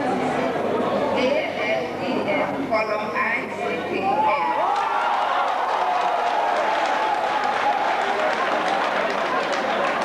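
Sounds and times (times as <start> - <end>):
crowd voices: 0.0 - 10.0
audience applauding: 4.6 - 10.0.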